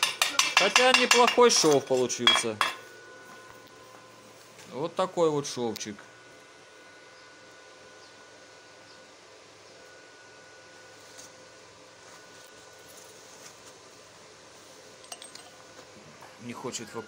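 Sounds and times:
steady background hiss: 0:00.0 - 0:17.0.

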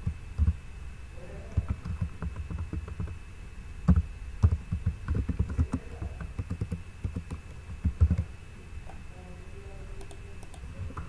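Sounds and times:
typing on computer keyboard: 0:01.6 - 0:03.2, 0:03.9 - 0:08.2.

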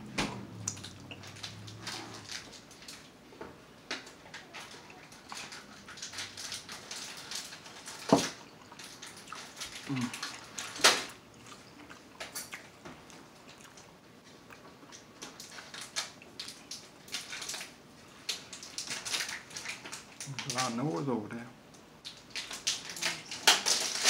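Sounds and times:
wet chewing and lip-smacking: 0:00.6 - 0:03.0, 0:08.3 - 0:20.2
person humming: 0:09.9 - 0:10.2.

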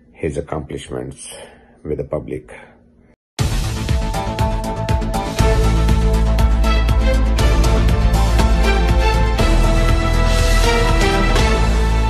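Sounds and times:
news theme music: 0:03.4 - 0:12.0.

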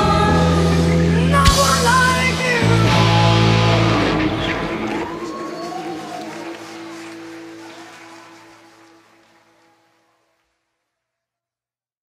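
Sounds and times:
sliding guitar notes: 0:00.3 - 0:05.3.

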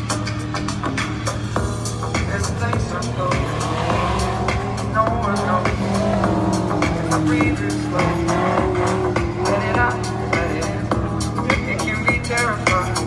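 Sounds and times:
background music with steady beat: 0:00.0 - 0:13.0
race car engine revving: 0:00.0 - 0:13.0.

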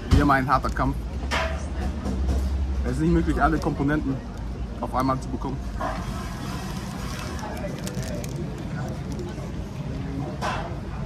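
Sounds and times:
background chatter of people: 0:00.0 - 0:11.0
traffic rumble: 0:00.0 - 0:11.0.

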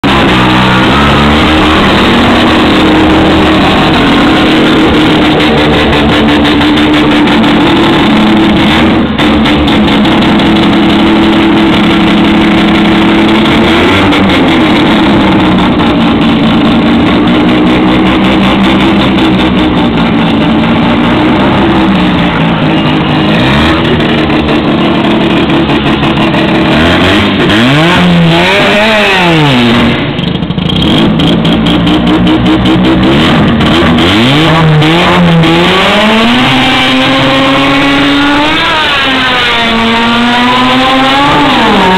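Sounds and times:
rotary engine revving: 0:00.0 - 0:41.9.

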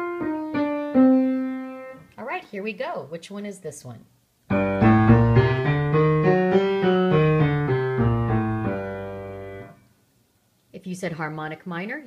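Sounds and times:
piano playing a minor scale: 0:00.0 - 0:02.0, 0:04.5 - 0:09.8.

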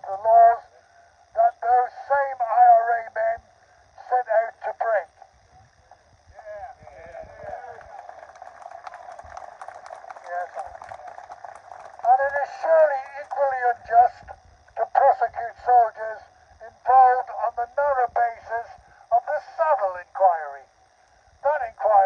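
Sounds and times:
man speaking through megaphone: 0:00.0 - 0:00.7, 0:01.4 - 0:03.4, 0:04.0 - 0:05.1, 0:10.1 - 0:11.2, 0:12.0 - 0:20.7, 0:21.4 - 0:22.0
mix of voices: 0:00.0 - 0:20.7, 0:21.4 - 0:22.0.

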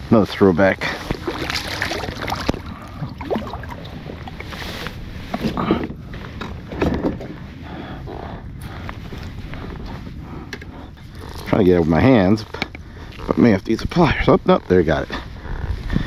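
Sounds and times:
water lapping against kayak hull: 0:00.7 - 0:06.2
wind on microphone: 0:00.7 - 0:16.0.

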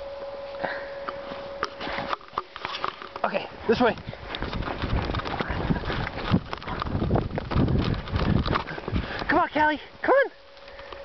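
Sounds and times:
footsteps crunching in snow: 0:00.5 - 0:09.5
microphone handling rumble: 0:01.1 - 0:10.0.

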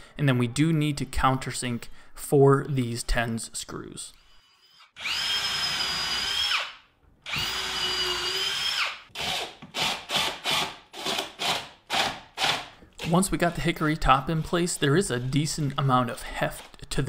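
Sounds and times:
cordless drill running: 0:04.4 - 0:12.6.

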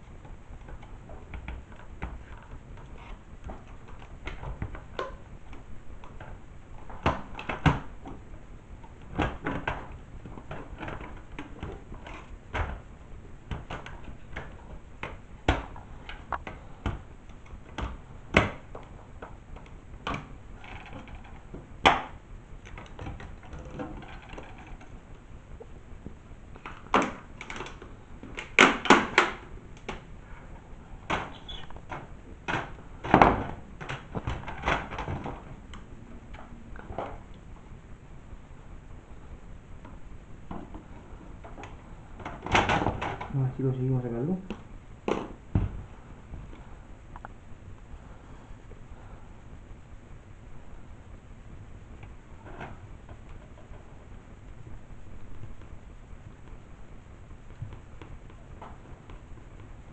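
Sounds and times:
monitor parts clicking and rattling: 0:13.5 - 0:25.7, 0:26.5 - 0:37.4, 0:39.8 - 0:43.8.

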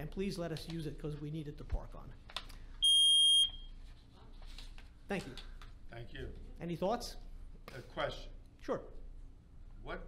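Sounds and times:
room noise: 0:00.0 - 0:10.0
loud electronic beep: 0:02.8 - 0:03.6.

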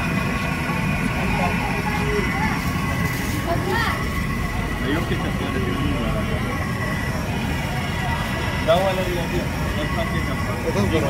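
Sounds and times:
indistinct voices: 0:00.0 - 0:11.0
low rumble of traffic: 0:00.0 - 0:11.0.

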